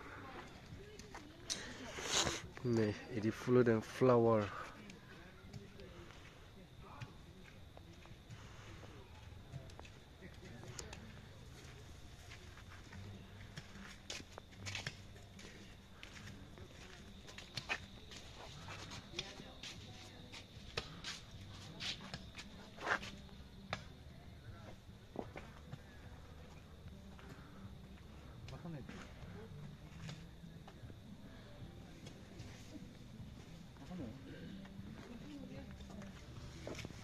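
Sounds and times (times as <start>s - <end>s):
faint background voices: 0.0s - 37.0s.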